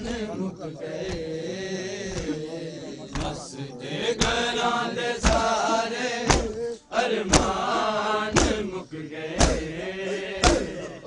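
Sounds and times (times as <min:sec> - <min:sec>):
men chanting in unison: 0:00.0 - 0:11.0
rhythmic chest-beating: 0:00.0 - 0:11.0.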